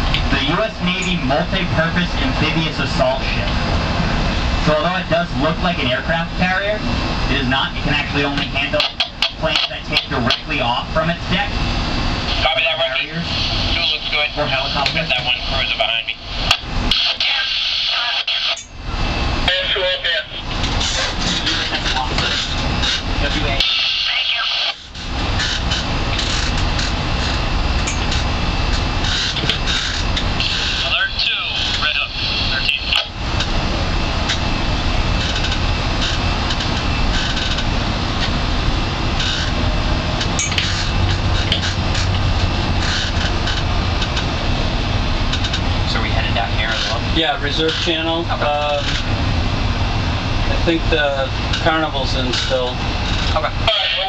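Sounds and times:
boat engine: 0.0 - 54.0.

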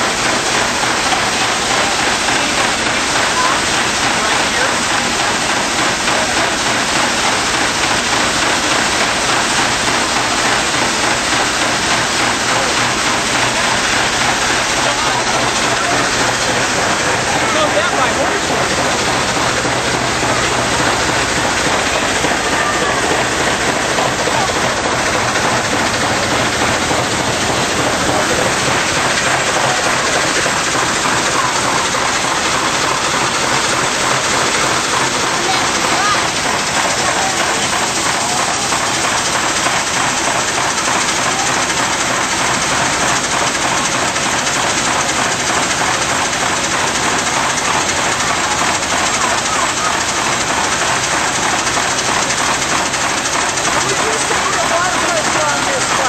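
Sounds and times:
steam fire engine pumping: 0.0 - 56.0
water rushing through hose: 0.0 - 56.0.

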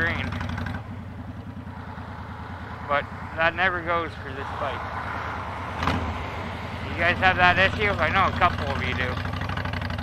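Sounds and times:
motorcycle engine idling: 0.0 - 4.4, 5.8 - 10.0.

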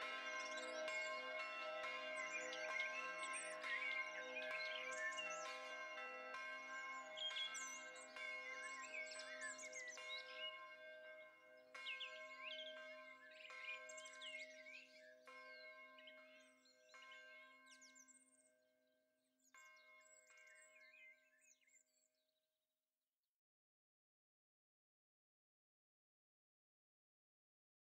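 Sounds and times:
birds chirping: 0.0 - 18.1
bells ringing: 0.0 - 18.4.

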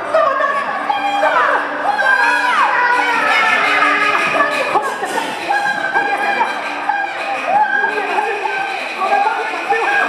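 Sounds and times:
high-pitched opera voice declaiming: 0.0 - 10.0.

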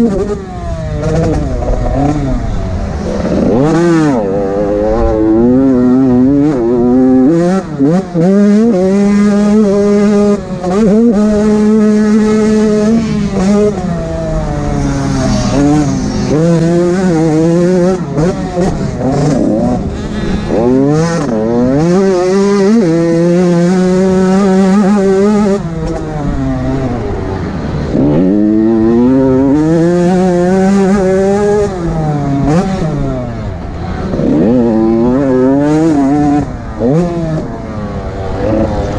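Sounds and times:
motocross bike engine revving: 0.0 - 38.9.

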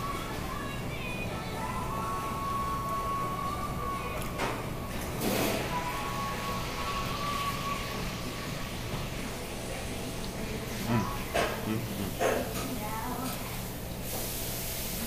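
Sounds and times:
low room hum: 0.0 - 14.4.

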